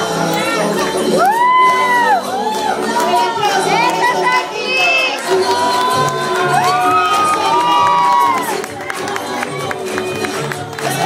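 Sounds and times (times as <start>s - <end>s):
children shouting and cheering: 0.3s - 11.0s.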